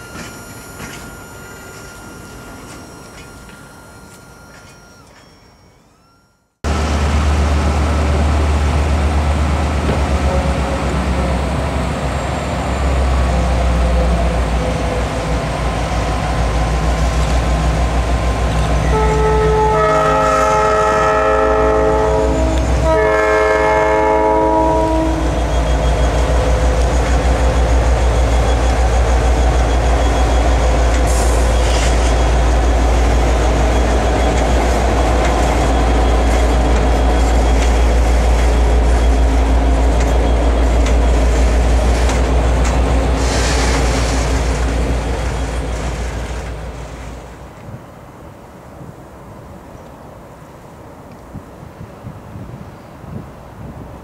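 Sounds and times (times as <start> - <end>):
freight cars rolling: 0.0 - 47.8
diesel locomotive rumble: 6.6 - 49.8
locomotive air horn: 18.8 - 25.5.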